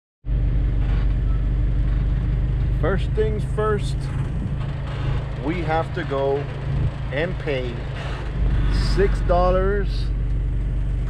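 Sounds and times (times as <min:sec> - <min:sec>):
car engine running: 0:00.3 - 0:11.0.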